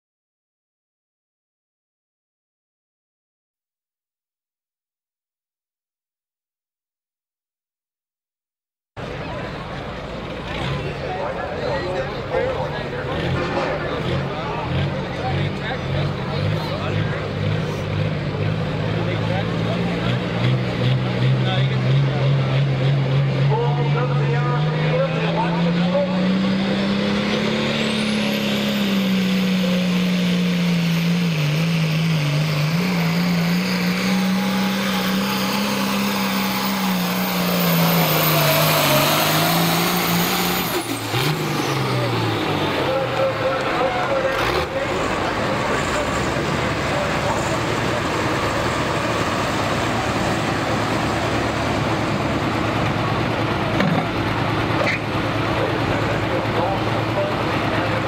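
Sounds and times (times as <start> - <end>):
diesel engine throbbing at low revs: 9.0 - 58.0.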